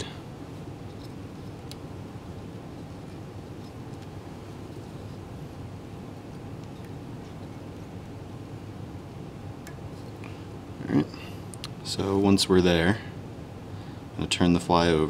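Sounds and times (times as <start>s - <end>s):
low room tone hum: 0.0s - 15.0s.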